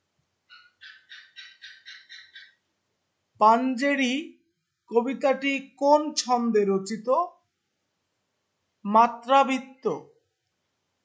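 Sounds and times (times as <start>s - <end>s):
animal chirping: 0.5s - 2.6s.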